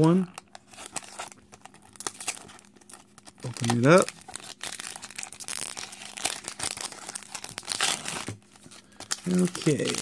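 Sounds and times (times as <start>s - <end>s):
foil wrapper tearing and crinkling: 0.0s - 10.0s.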